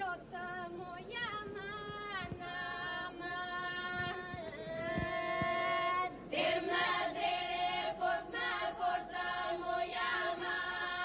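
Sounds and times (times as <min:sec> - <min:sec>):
group singing a drone: 0:02.3 - 0:11.0.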